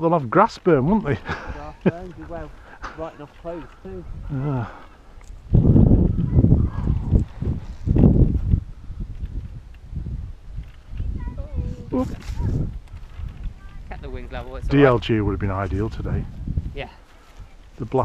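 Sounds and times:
wind rumbling on microphone: 0:00.7 - 0:18.0.

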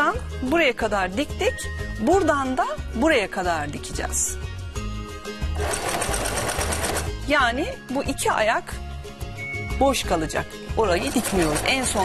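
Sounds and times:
sewing machine stitching: 0:05.6 - 0:07.2, 0:10.8 - 0:12.0.

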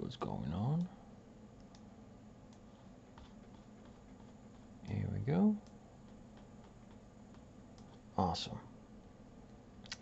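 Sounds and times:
low steady hum: 0:00.0 - 0:10.0
computer mouse clicks: 0:01.6 - 0:01.9.

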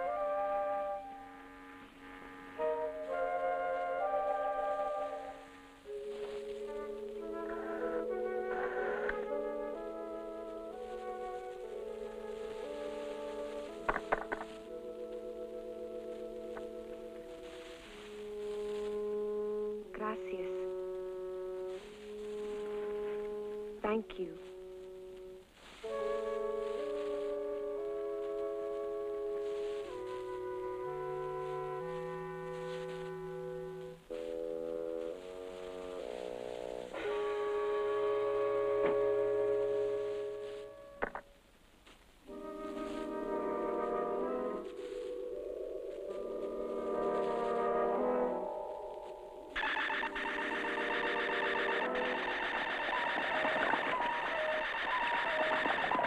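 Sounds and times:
film score held chords: 0:00.0 - 0:41.5, 0:42.2 - 0:56.0.

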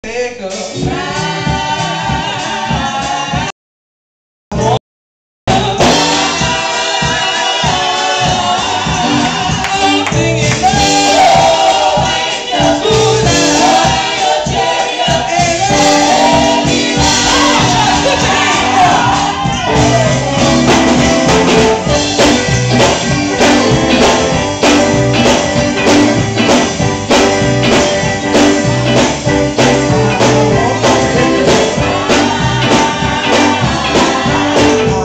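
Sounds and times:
live band with steady beat: 0:00.4 - 0:03.5, 0:05.5 - 0:35.0
women singing gospel: 0:00.8 - 0:03.5, 0:05.5 - 0:24.1, 0:29.4 - 0:35.0.

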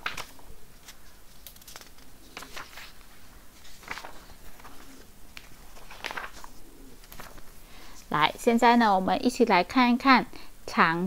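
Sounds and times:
bird cooing: 0:04.1 - 0:07.9.

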